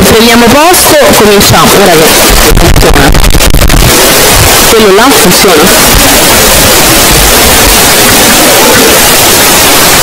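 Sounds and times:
loud static hiss: 0.0 - 10.0.

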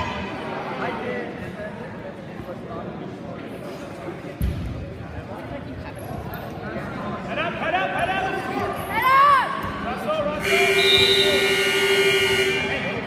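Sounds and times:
scoreboard buzzer steady tone: 10.4 - 12.8.

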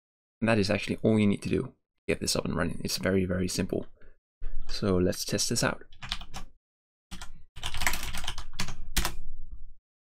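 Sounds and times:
typing on computer keyboard: 6.0 - 6.5, 7.1 - 9.2.

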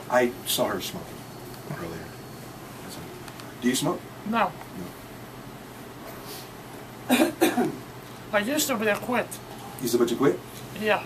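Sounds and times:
person coughing: 7.1 - 7.8.

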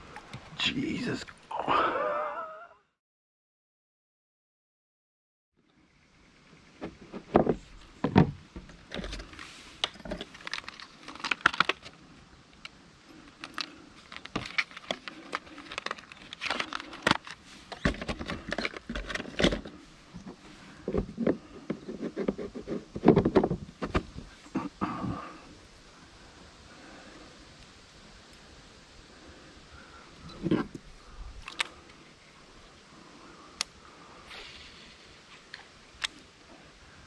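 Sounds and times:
plastic packet crinkling: 10.3 - 12.0, 13.4 - 17.4.

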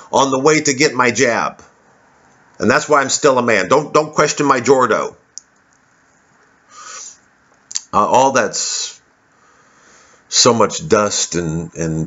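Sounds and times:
man speaking: 2.6 - 5.2, 7.8 - 9.1, 10.3 - 12.0
man breathing out smoke: 6.7 - 7.2
mouth click: 7.5 - 7.9.

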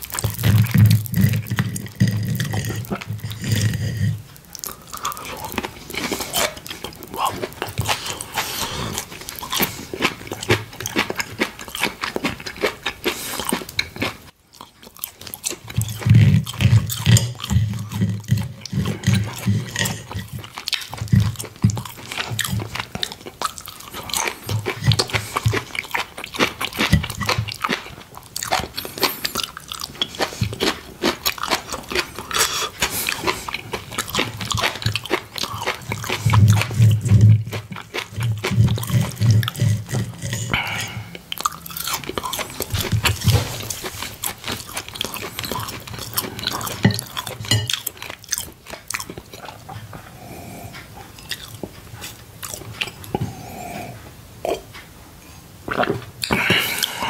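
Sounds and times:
crisp chewing crunches: 0.0 - 50.1, 51.1 - 53.4
wet mouth clicks: 55.7 - 57.0.

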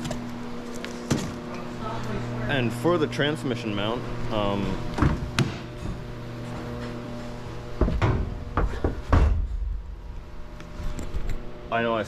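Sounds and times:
knocks and heavy thump: 5.0 - 6.0, 7.8 - 10.0.

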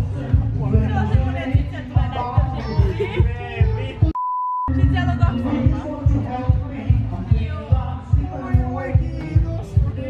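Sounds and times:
background music with steady beat: 0.0 - 10.0
censor bleep: 4.2 - 5.5.

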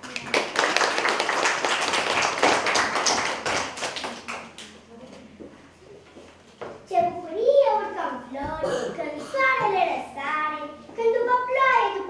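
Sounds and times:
people applauding: 0.0 - 4.8.

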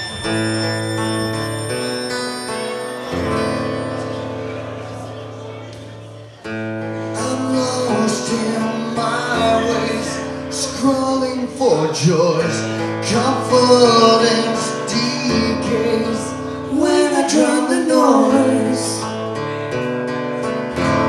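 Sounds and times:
acoustic guitar playing: 0.0 - 21.0
man singing into a microphone: 7.0 - 19.2.

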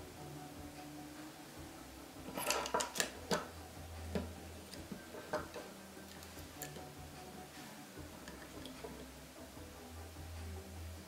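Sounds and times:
plastic and metal parts clicking: 2.3 - 3.5.

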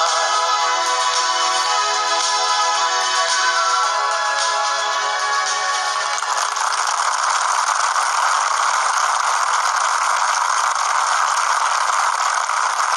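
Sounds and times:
audience applauding: 6.0 - 12.9.

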